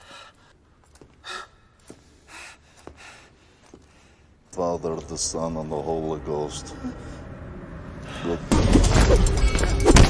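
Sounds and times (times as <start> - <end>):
man breathing heavily: 0.0 - 4.4.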